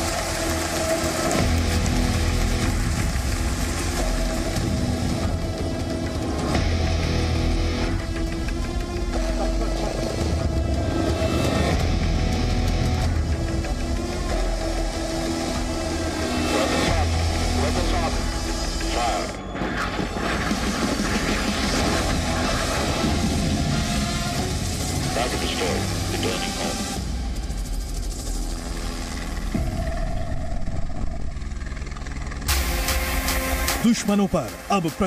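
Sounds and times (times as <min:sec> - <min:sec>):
helicopter engine and rotor rumble: 0:00.0 - 0:35.0.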